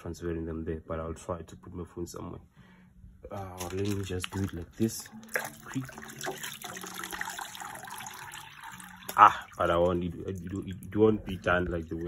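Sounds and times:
water splashing into a bucket: 3.4 - 10.8.

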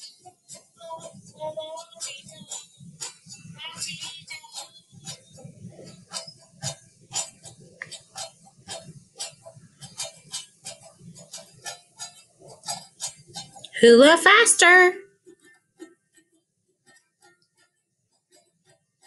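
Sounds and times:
clicking percussion strokes: 0.0 - 15.5.

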